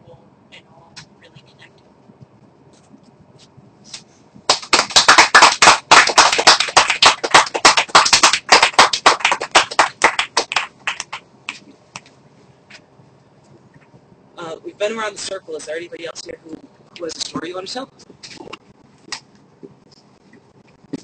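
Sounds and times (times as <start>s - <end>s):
small group applauding: 4.5s - 12.1s.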